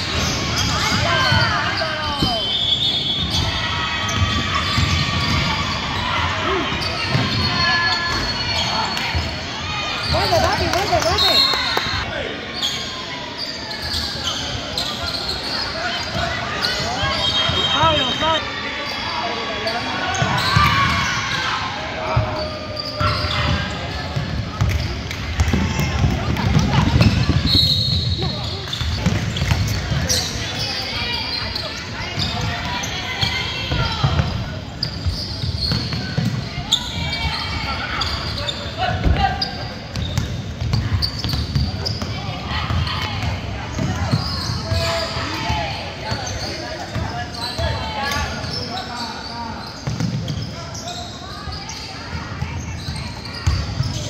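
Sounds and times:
voices of spectators and players: 0:00.0 - 0:54.0
basketball bouncing on court: 0:04.0 - 0:05.6, 0:06.8 - 0:08.3, 0:23.0 - 0:30.1, 0:33.7 - 0:36.5, 0:39.9 - 0:44.8, 0:49.8 - 0:50.5, 0:52.6 - 0:54.0.

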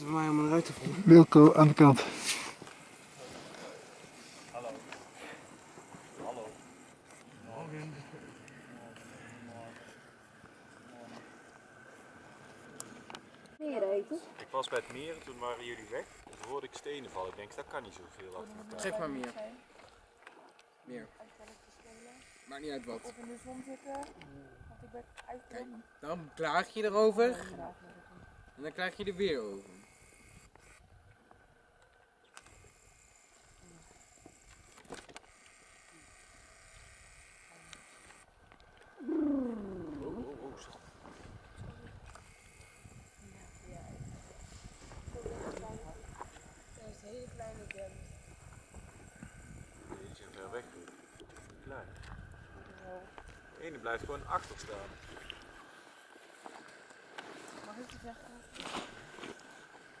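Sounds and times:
people talking outdoors: 0:00.0 - 1:00.0
small clicks: 0:31.8 - 0:33.6
noisy rustle or crunch: 0:33.4 - 1:00.0
person's long falling voice: 0:39.0 - 0:40.3.

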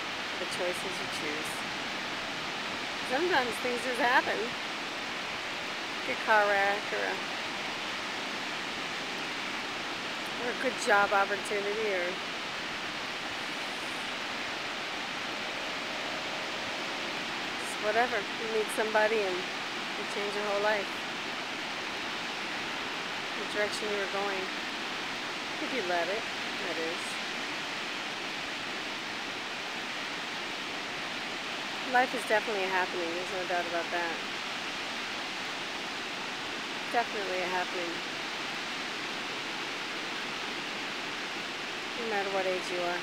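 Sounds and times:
ocean surf on beach: 0:00.0 - 0:43.0.

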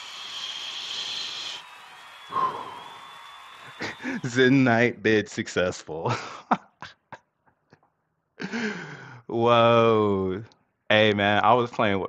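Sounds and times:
breathy exhale: 0:08.5 - 0:09.3.

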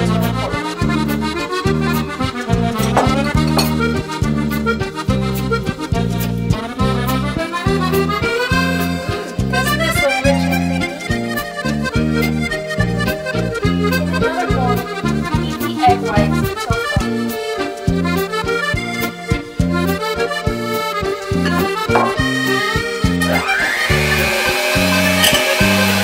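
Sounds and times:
background music with bass beat: 0:00.0 - 0:23.4.

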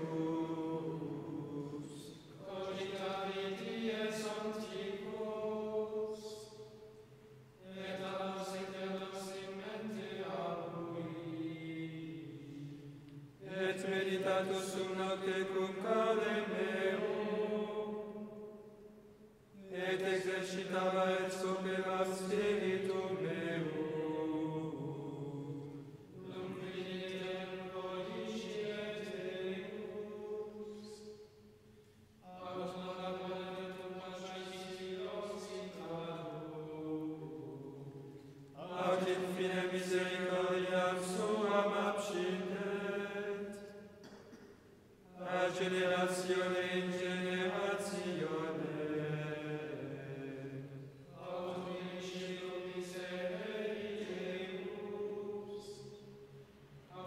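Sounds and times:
men's choir chanting: 0:00.0 - 0:06.6, 0:07.6 - 0:18.5, 0:19.6 - 0:31.2, 0:32.3 - 0:44.4, 0:45.2 - 0:56.2.

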